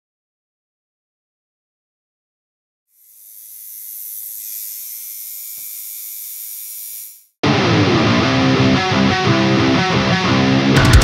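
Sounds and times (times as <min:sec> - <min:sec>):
high-pitched static hiss: 0:03.0 - 0:07.4.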